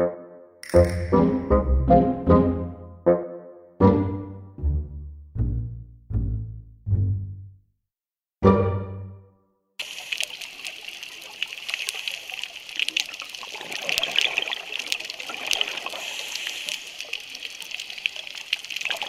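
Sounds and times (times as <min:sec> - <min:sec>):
music: 0:00.0 - 0:07.6, 0:08.4 - 0:09.6
water trickling with crackles: 0:09.8 - 0:19.0.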